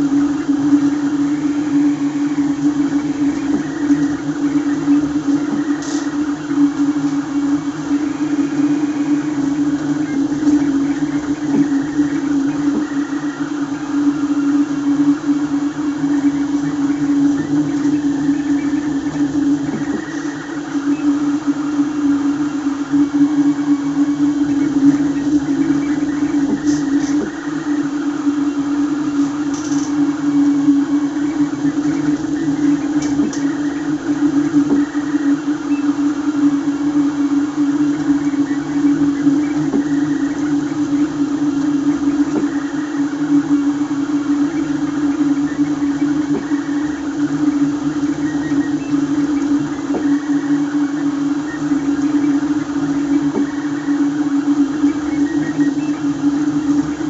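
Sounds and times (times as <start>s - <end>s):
printer motors and fan humming: 0.0s - 57.0s
print head ticks: 22.9s - 27.9s, 28.6s - 57.0s.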